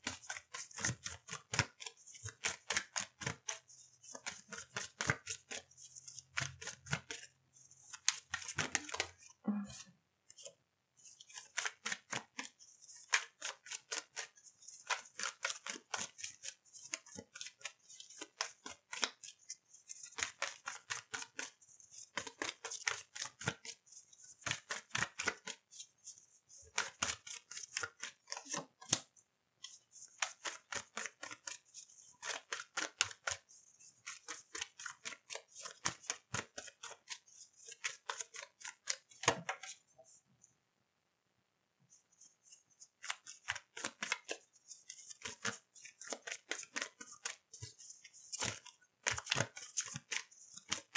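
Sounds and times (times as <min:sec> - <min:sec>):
cards being shuffled: 0:00.0 - 0:09.3, 0:10.3 - 0:39.8, 0:42.2 - 0:50.9.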